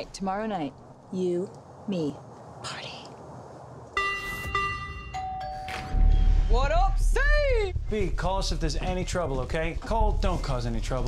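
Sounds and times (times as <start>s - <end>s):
doorbell chime ringing: 4.0s - 6.2s.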